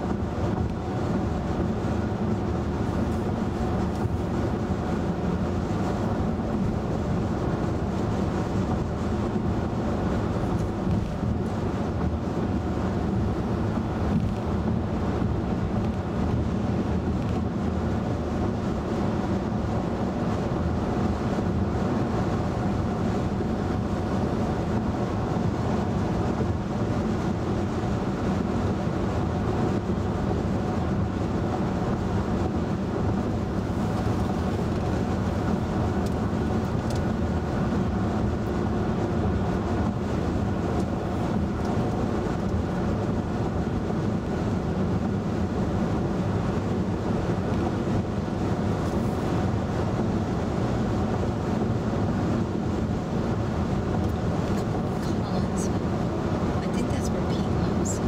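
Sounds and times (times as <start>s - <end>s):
car cabin hum: 0.0s - 58.0s
car tyre rumble on road: 0.0s - 58.0s.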